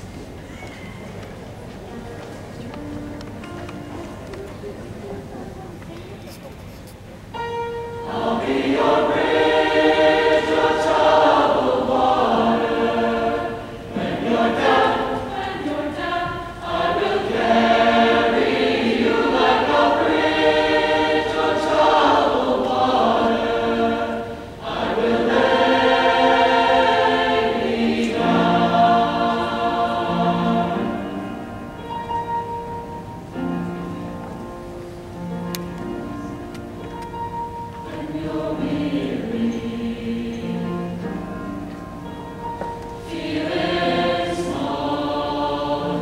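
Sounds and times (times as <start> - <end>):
choir singing: 7.5 - 34.0, 37.2 - 46.0.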